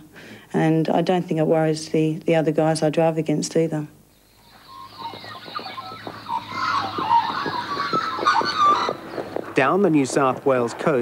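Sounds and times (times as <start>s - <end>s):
hoofbeats on dirt track: 4.4s - 11.0s.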